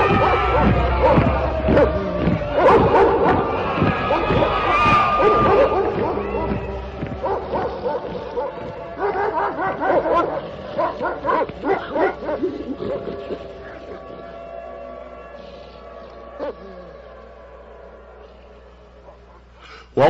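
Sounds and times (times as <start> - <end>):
dogs barking and yipping: 0.0 - 14.6.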